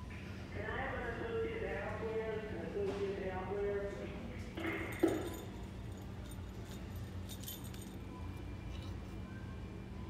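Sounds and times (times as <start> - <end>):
steady store hum: 0.0 - 10.0
ornaments clinking on metal hooks: 4.6 - 8.1.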